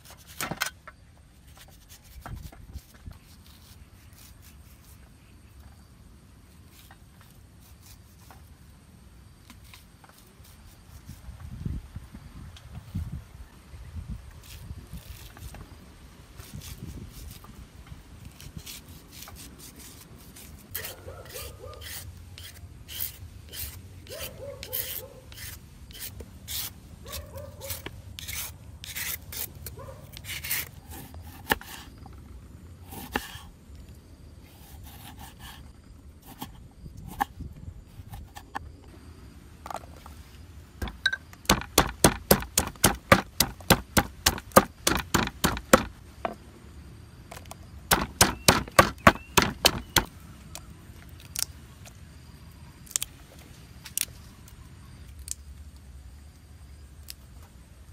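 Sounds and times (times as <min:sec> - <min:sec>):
knife scraping corn kernels: 0:00.0 - 0:00.8, 0:01.4 - 0:05.1, 0:18.2 - 0:32.0, 0:32.8 - 0:33.5, 0:34.4 - 0:37.4, 0:40.8 - 0:45.9, 0:47.9 - 0:50.1
knife cutting on wooden board: 0:30.2 - 0:31.9, 0:32.9 - 0:33.4, 0:40.8 - 0:45.9, 0:47.9 - 0:50.1
pestle pounding in mortar: 0:40.8 - 0:46.0, 0:47.9 - 0:50.1.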